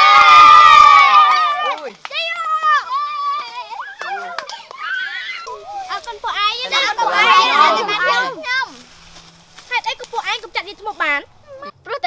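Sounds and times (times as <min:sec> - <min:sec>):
children shouting and talking: 0:00.0 - 0:12.0.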